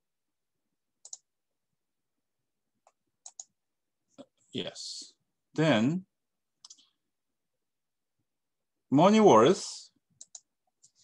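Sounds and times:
computer mouse clicks: 1.0s - 1.3s, 2.8s - 3.6s, 10.2s - 11.0s.

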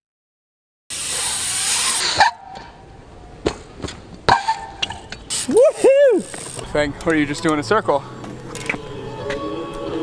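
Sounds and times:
bmx bike rolling on concrete: 0.9s - 2.3s, 4.8s - 10.0s.

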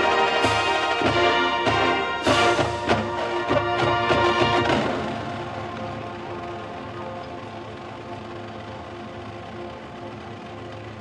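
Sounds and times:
marching band playing chords: 0.0s - 11.0s.

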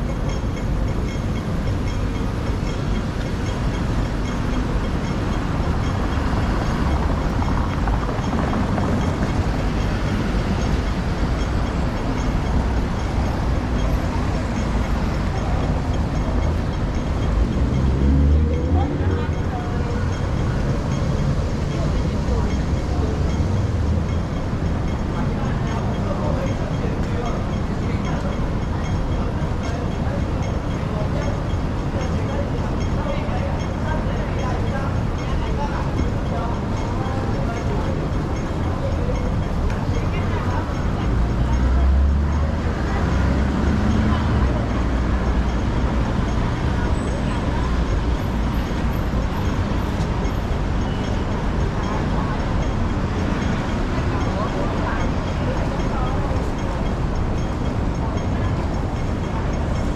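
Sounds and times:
city street traffic: 0.0s - 59.9s
heavy vehicle rumble: 0.0s - 59.9s
passers-by talking: 0.0s - 59.9s.

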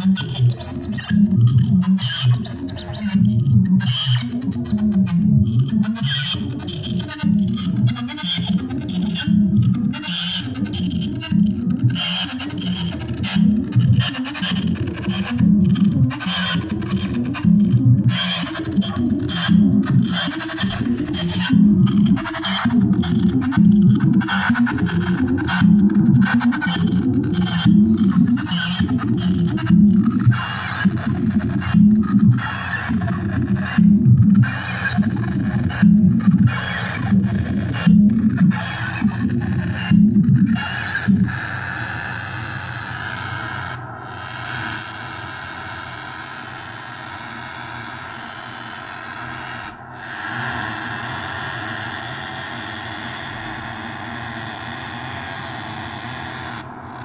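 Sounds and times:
sequenced electronic synth loop: 0.0s - 49.8s
steady sustained synth tone: 8.6s - 41.3s.

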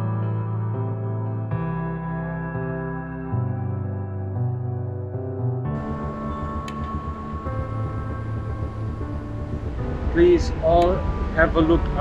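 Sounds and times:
ambient music tones: 0.0s - 12.0s
ship engine rumble: 5.8s - 12.0s.

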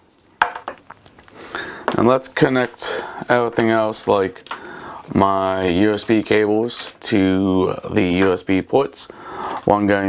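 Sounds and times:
plastic clicks and knocks: 0.4s - 0.9s.

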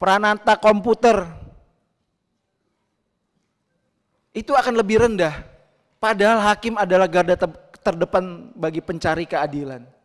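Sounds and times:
man speaking: 0.0s - 1.6s, 4.3s - 10.0s.

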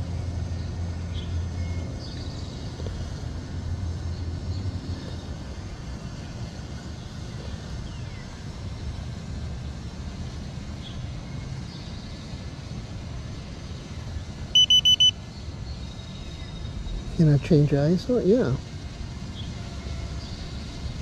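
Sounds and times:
low outdoor wind rumble: 0.0s - 21.0s
high electronic beeps: 14.6s - 15.2s.

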